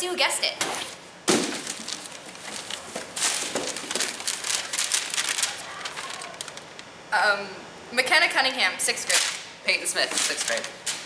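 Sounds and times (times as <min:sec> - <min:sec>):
paper rustling and crackling: 0:01.3 - 0:06.9, 0:09.1 - 0:11.0.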